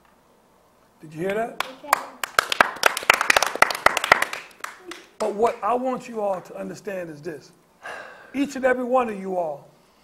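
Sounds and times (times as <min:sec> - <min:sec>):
group clapping hands: 0:01.2 - 0:06.5.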